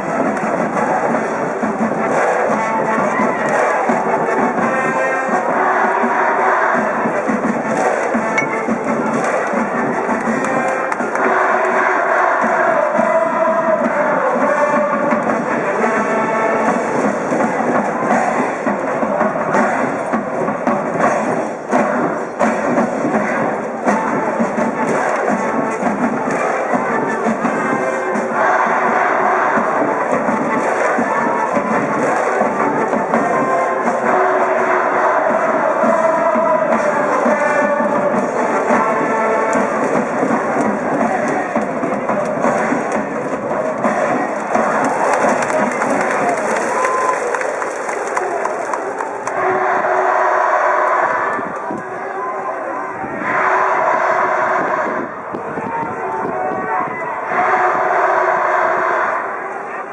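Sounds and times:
drum beat: 0.0s - 49.5s
brass band playing: 0.0s - 59.9s
crowd cheering: 0.0s - 59.9s.

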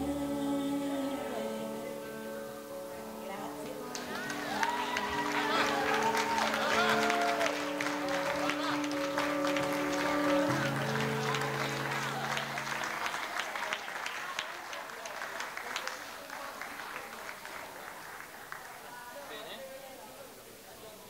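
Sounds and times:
song final chords: 0.0s - 13.2s
audience applauding: 3.8s - 19.6s.

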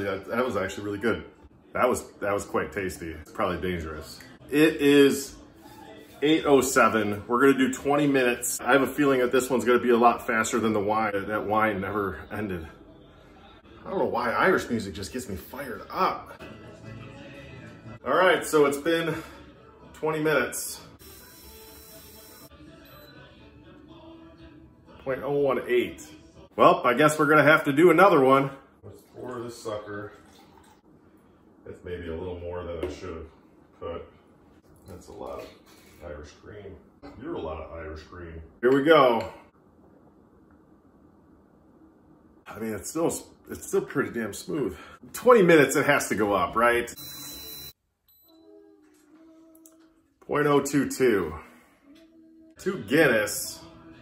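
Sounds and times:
faint background music: 0.0s - 39.5s, 42.4s - 54.0s.

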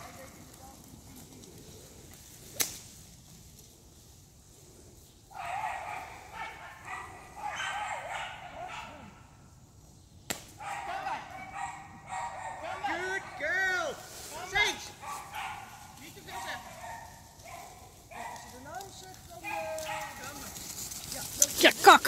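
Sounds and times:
sharp cracks: 1.4s - 3.0s, 10.2s - 10.6s.

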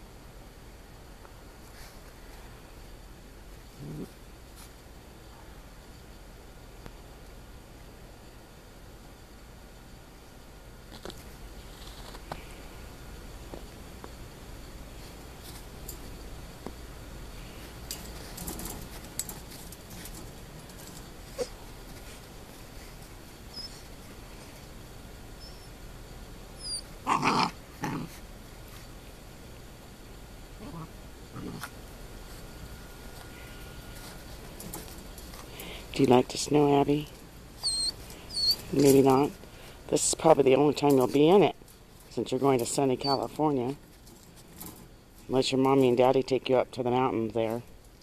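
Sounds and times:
puppy grunting: 3.7s - 4.2s, 21.3s - 21.6s, 26.6s - 28.2s, 30.6s - 31.7s, 37.6s - 38.7s.

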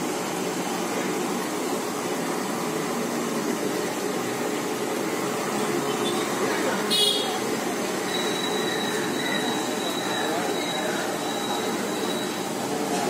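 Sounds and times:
food stall background din: 0.0s - 13.0s
thin high whine: 8.0s - 13.0s
faint voices: 8.5s - 13.0s.

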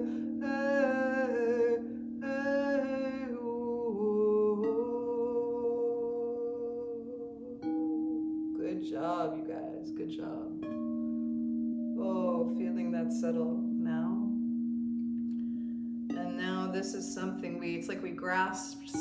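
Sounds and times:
crystal singing bowls ringing: 0.0s - 6.2s, 7.6s - 9.2s, 9.8s - 19.0s
woman singing wordlessly: 0.0s - 7.6s, 8.6s - 10.6s, 12.0s - 14.4s, 16.1s - 19.0s.

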